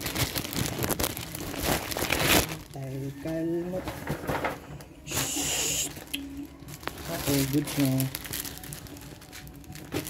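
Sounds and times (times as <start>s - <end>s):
plastic mailer bag crinkling: 0.0s - 4.5s, 5.9s - 10.0s.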